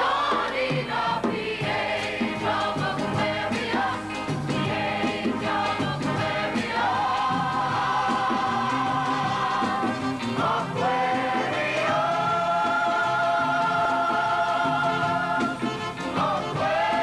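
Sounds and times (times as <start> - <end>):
group singing over rock band: 0.0 - 17.0.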